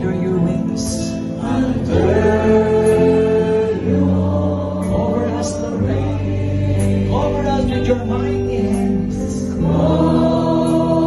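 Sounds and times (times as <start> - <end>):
keyboard: 0.0 - 11.0
women singing: 9.6 - 11.0.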